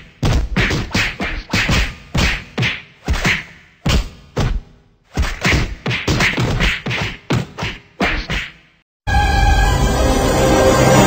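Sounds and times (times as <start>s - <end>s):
sharp fight whacks: 0.2s - 8.7s.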